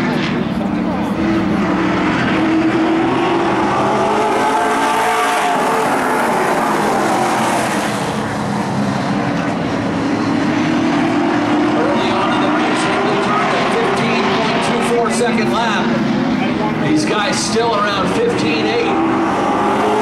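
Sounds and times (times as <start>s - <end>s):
race car engines passing: 0.0s - 20.0s.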